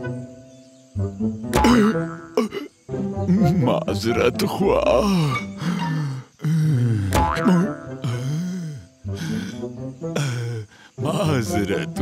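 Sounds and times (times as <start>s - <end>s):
springy boing: 1.5s - 2.5s, 7.1s - 8.0s.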